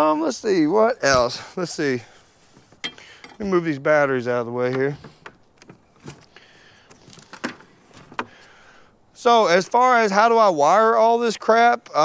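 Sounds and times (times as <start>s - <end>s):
faint rustling: 1.3s - 3.7s, 4.5s - 8.9s.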